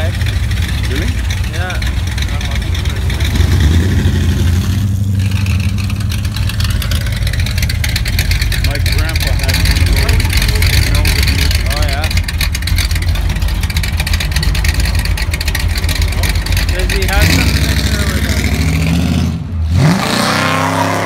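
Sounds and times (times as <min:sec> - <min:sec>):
old car engines rumbling past: 0:00.0 - 0:21.0.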